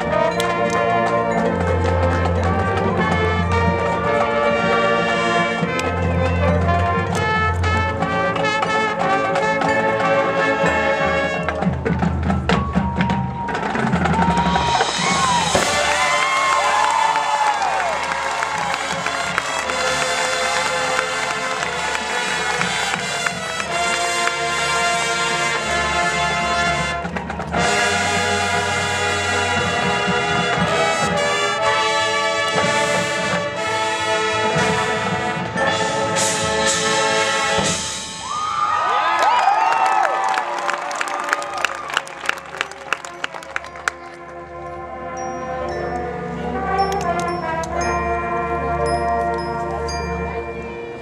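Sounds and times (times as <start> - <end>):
marching band playing: 0.0 - 39.1, 39.9 - 51.0
crowd cheering: 13.8 - 26.0, 38.1 - 44.3.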